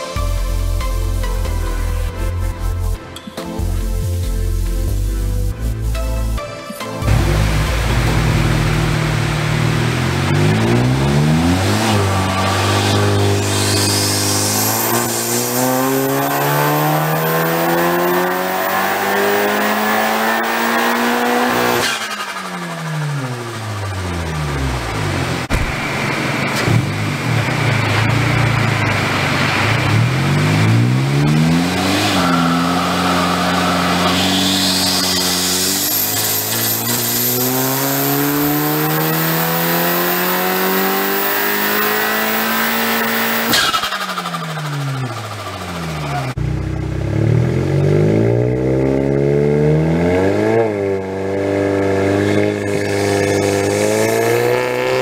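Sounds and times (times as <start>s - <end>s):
car engine revving: 7.0s - 55.0s
sharp engine burst: 7.1s - 23.8s, 31.7s - 46.4s.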